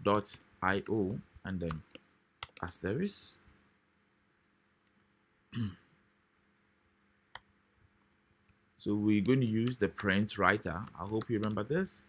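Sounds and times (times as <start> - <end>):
man clearing throat: 5.5 - 5.9.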